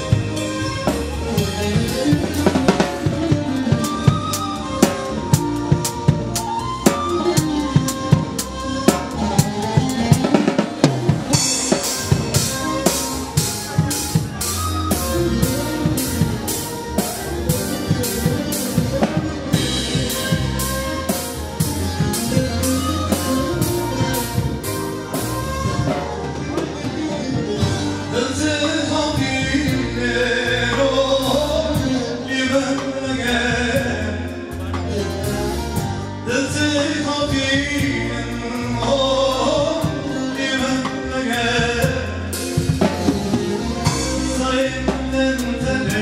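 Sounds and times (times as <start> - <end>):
bass guitar line: 0.0 - 46.0
drum kit beating busy rhythm: 0.0 - 46.0
sustained keyboard melody: 0.0 - 46.0.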